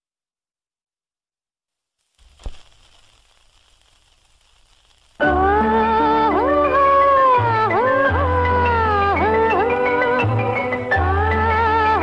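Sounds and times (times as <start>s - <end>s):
recording hiss: 1.9s - 12.0s.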